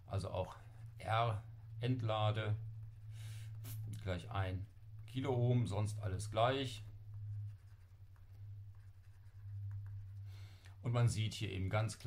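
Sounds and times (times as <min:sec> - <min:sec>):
steady low hum: 0:00.0 - 0:12.0
stylus tapping and scratching screen: 0:00.5 - 0:10.4.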